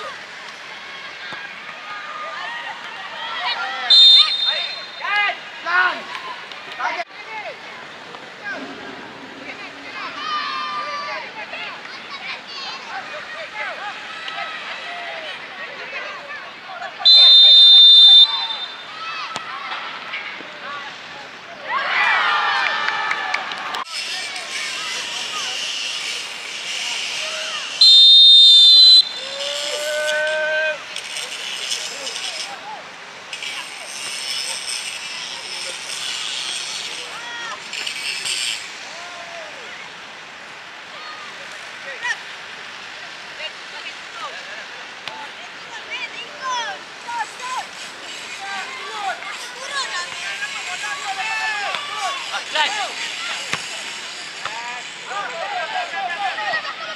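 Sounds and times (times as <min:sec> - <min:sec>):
players shouting: 0:00.0 - 0:23.8
referee's whistle blast: 0:03.9 - 0:05.2, 0:17.0 - 0:19.0, 0:27.8 - 0:29.4.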